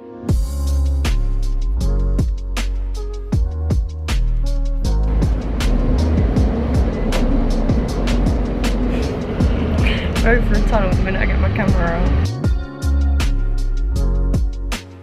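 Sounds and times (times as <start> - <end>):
background music with steady beat: 0.0 - 15.0
train rumble: 4.9 - 12.4.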